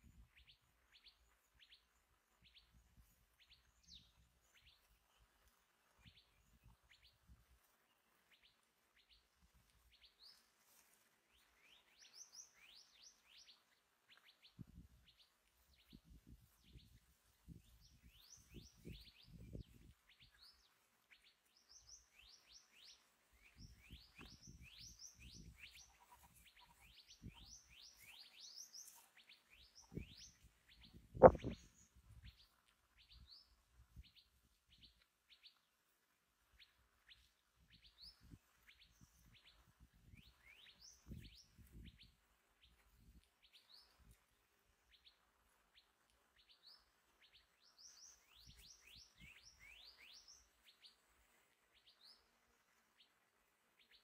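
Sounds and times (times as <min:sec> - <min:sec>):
birds chirping: 0:20.2 - 0:32.5
sharp thump: 0:31.2 - 0:31.6.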